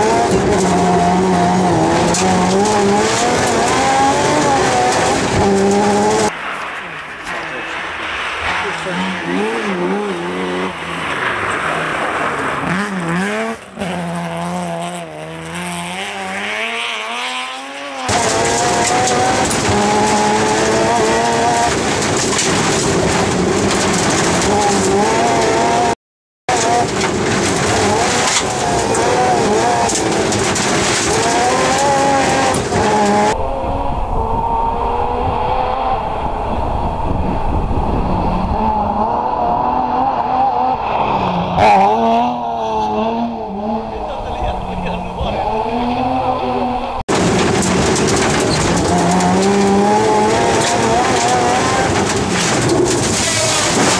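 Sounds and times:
rally car engine revving: 0.0 - 53.9
wind rumble on microphone: 33.0 - 39.9.

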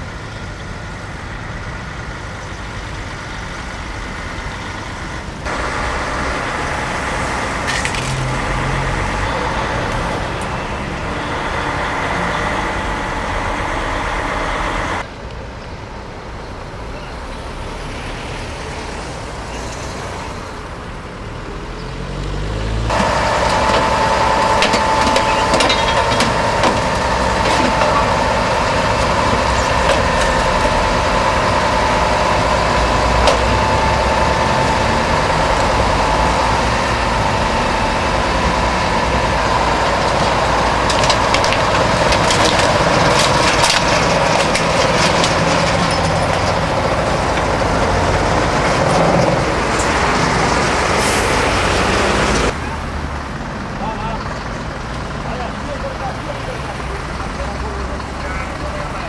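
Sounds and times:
heavy truck engines running: 0.0 - 59.0
road traffic noise: 0.0 - 59.0
steady whine: 22.9 - 50.9.

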